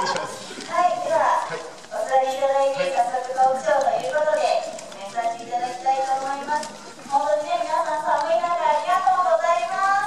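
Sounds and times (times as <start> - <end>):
speech over loudspeaker: 0.0 - 10.0.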